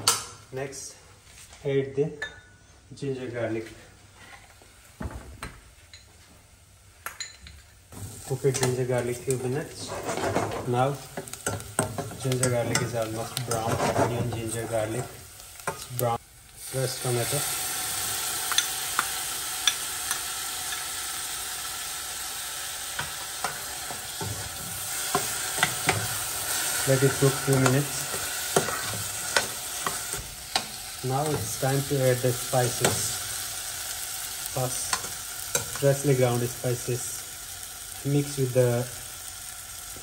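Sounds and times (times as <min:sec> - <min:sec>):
tomatoes sizzling in butter: 0:07.9 - 0:40.0.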